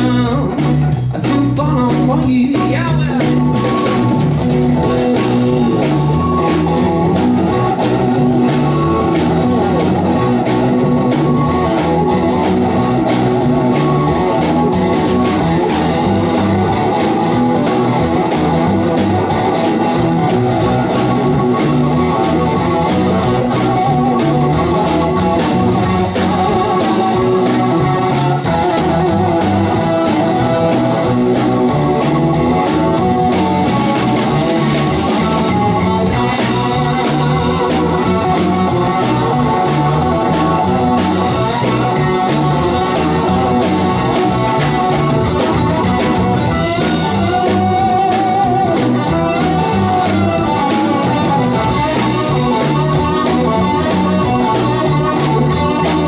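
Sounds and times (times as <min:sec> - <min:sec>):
bass guitar: 0:00.0 - 0:56.0
drum kit: 0:00.0 - 0:56.0
electric guitar: 0:00.0 - 0:56.0
keyboard: 0:00.0 - 0:56.0.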